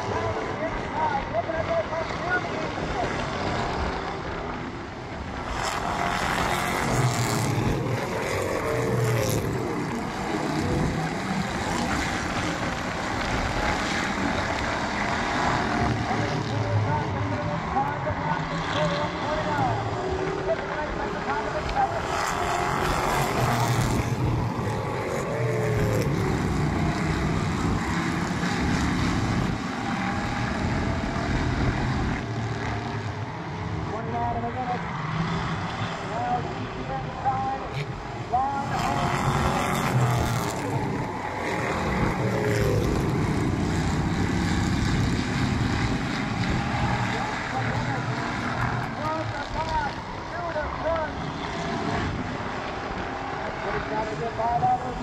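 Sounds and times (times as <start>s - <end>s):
race car engines droning: 0.0s - 55.0s.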